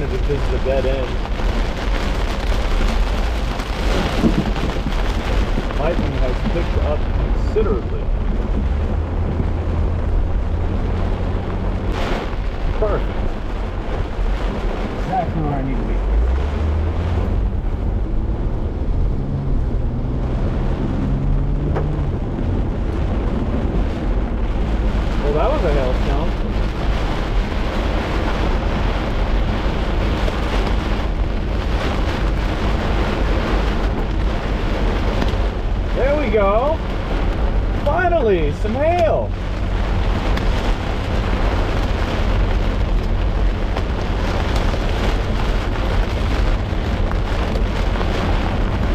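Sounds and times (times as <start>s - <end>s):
heavy low rumble: 0.0s - 48.9s
heavy rain on car: 0.0s - 48.9s.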